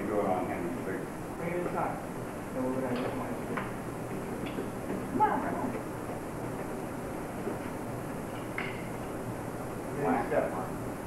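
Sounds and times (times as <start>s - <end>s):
videotape hum and hiss: 0.0s - 11.0s.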